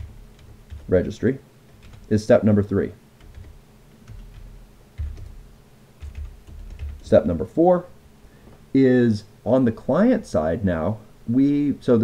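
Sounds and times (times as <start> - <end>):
keyboard typing: 0.0 - 2.3, 3.2 - 7.3.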